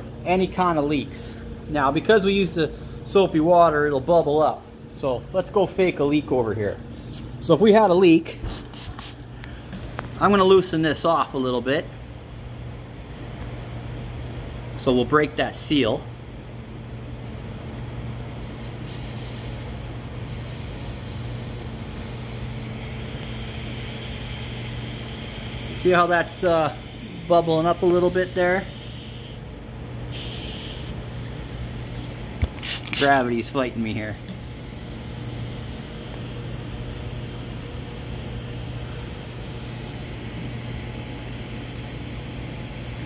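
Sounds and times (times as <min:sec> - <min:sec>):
steady mechanical hum: 0:00.0 - 0:43.0.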